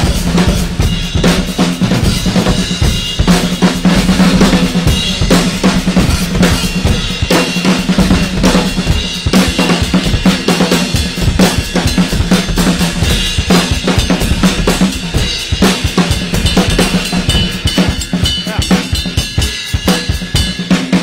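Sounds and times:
drum kits playing fast: 0.0 - 21.0.

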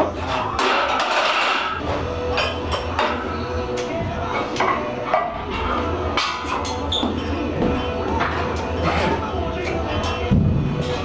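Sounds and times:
music from radio: 0.0 - 11.0.

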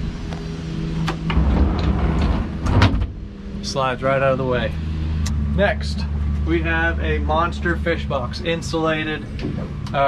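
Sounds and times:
seat sliding with rumbling scrape: 0.0 - 9.8
steady low hum: 0.0 - 10.0.

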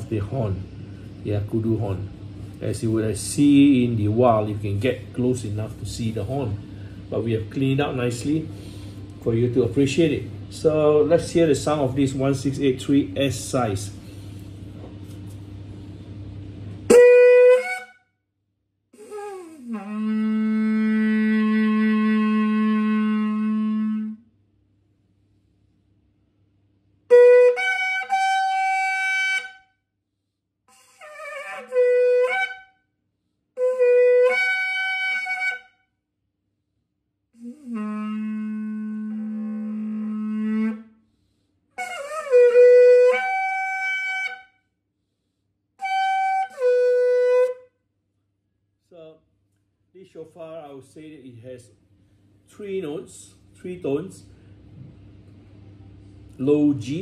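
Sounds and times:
horn blasts: 16.9 - 18.0, 19.2 - 24.2.

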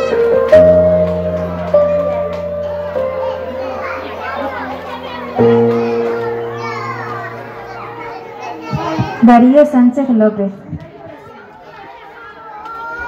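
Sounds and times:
slow held keyboard chords: 0.0 - 9.2
young children chattering: 0.0 - 13.0.

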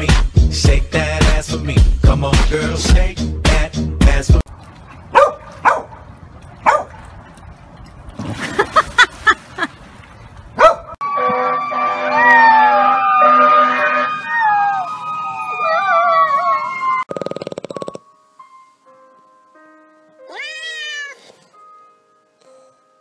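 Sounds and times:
puppy howling: 14.2 - 17.0.

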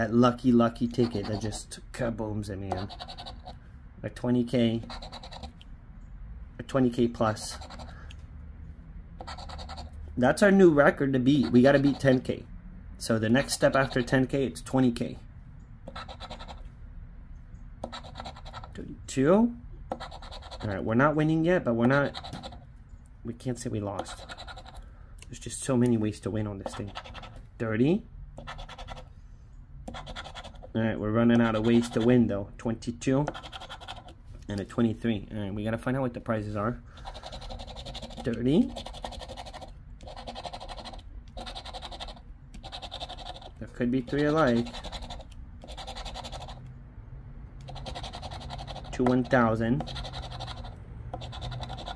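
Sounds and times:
lottery ticket scratching: 0.6 - 1.8, 2.6 - 3.6, 4.6 - 5.6, 6.8 - 8.1, 9.2 - 10.0, 10.6 - 12.4, 13.4 - 14.3, 15.9 - 16.7, 17.8 - 18.8, 19.9 - 21.0, 21.8 - 22.7, 23.8 - 24.8, 25.9 - 27.5, 28.4 - 29.1, 29.9 - 32.3, 33.3 - 34.2, 36.9 - 46.7, 47.6 - 51.9.

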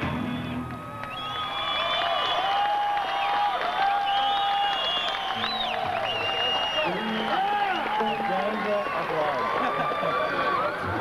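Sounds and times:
crowd applauding and cheering: 0.0 - 11.0
high held whistles: 0.1 - 2.8, 3.9 - 8.2
people yelling: 5.7 - 11.0.

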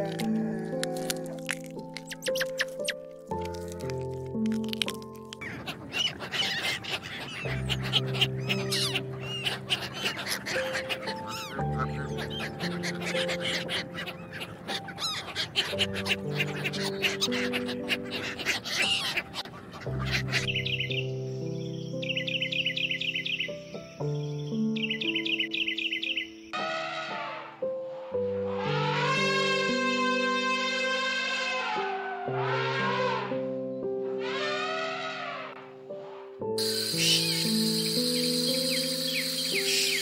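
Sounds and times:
background music with steady notes: 0.0 - 40.0.

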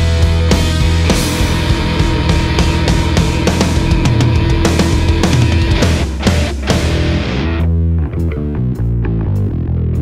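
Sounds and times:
hard rock band playing: 0.0 - 8.6
distorted electric guitar riff: 0.0 - 10.0.

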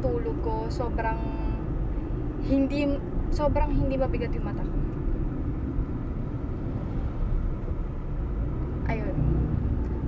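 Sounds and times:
car engine and tyre rumble inside: 0.0 - 10.0.

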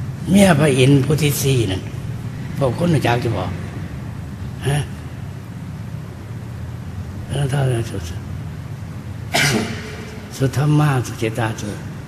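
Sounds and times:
low hum: 0.0 - 12.0
person coughing: 9.3 - 10.3.

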